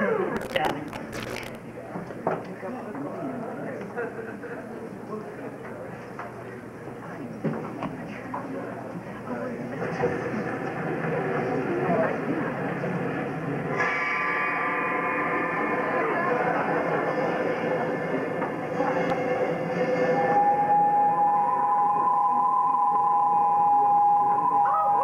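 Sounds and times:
sustained electronic keyboard tones: 0:00.4 - 0:01.6, 0:20.4 - 0:25.0.

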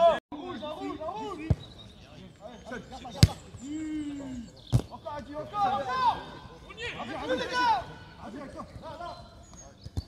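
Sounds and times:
players shouting: 0:02.6 - 0:09.3
football kick thuds: 0:03.2 - 0:03.4.

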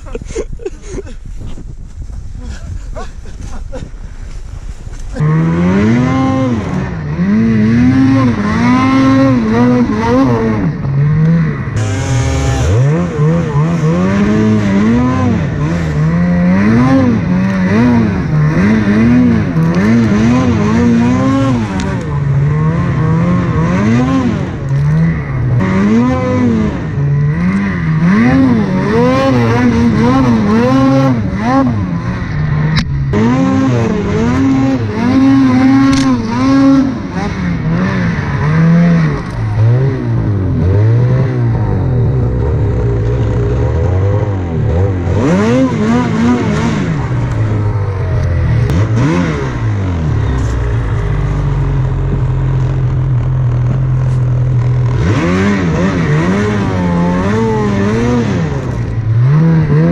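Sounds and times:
snowmobile engine revving: 0:02.4 - 0:59.9.

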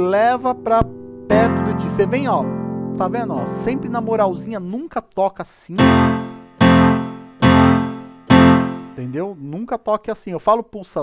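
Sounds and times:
piano chords struck hard: 0:00.6 - 0:04.5, 0:05.8 - 0:09.0.

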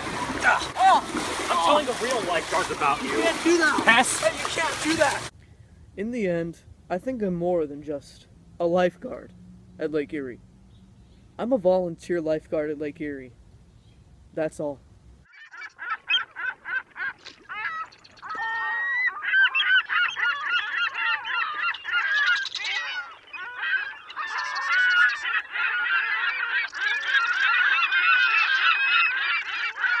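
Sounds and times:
geese honking: 0:00.0 - 0:05.3, 0:15.3 - 0:30.0.

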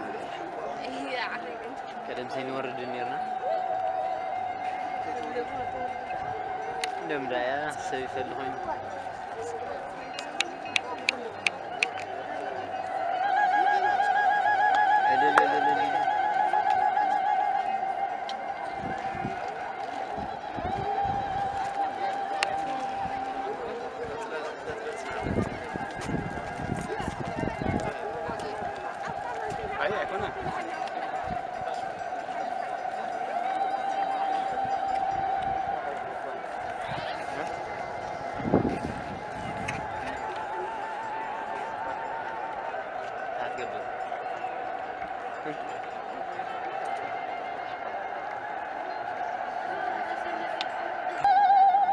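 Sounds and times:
crowd voices: 0:00.0 - 0:51.9
women ululating: 0:03.1 - 0:07.0, 0:12.5 - 0:24.3, 0:25.8 - 0:43.4, 0:46.5 - 0:51.9.

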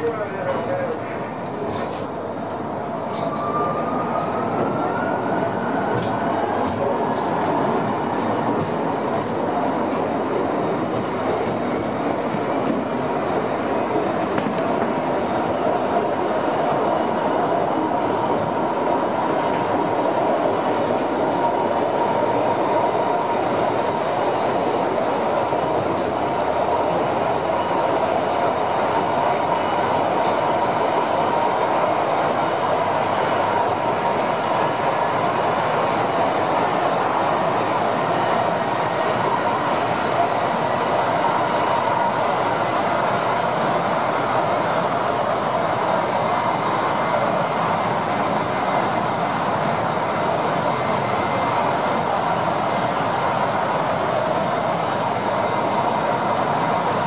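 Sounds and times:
wheels rumbling on rail: 0:00.0 - 0:57.0.

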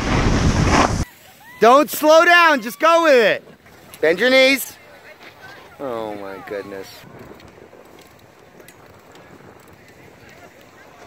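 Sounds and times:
wind noise on microphone: 0:00.0 - 0:01.1, 0:05.5 - 0:11.0.

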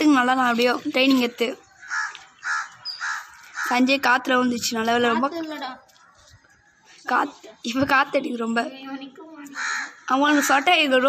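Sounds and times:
crow cawing: 0:01.8 - 0:04.0, 0:09.5 - 0:11.0.

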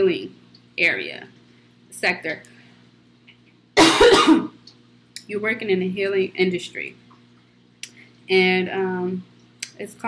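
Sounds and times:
woman coughing: 0:03.8 - 0:04.6.

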